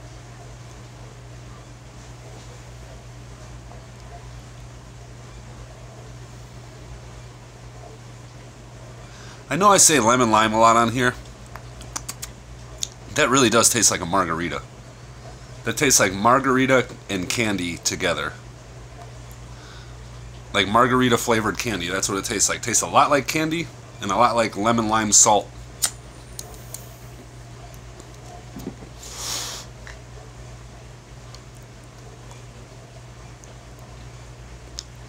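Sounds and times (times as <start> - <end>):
steady low hum: 0.0 - 35.0
inhale through a pipe: 9.1 - 9.5, 19.5 - 20.0, 29.0 - 29.7.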